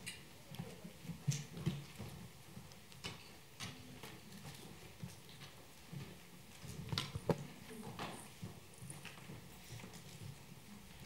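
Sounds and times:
low room murmur: 0.0s - 11.0s.

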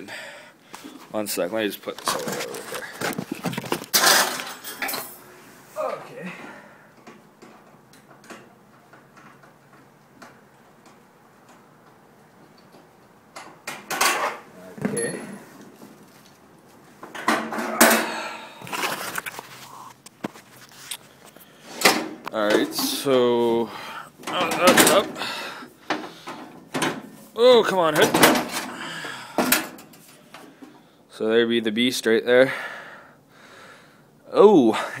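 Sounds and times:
hard objects clinking and clattering: 2.0s - 5.3s.

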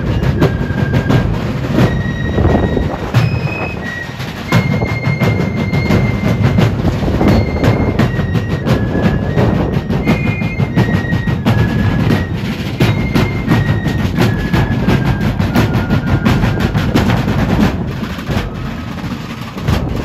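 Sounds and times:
rapid drumbeats: 0.0s - 20.0s.

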